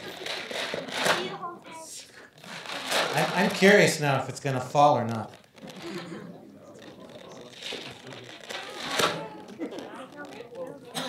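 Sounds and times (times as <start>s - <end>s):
children murmuring: 0.0s - 3.5s, 5.7s - 11.0s.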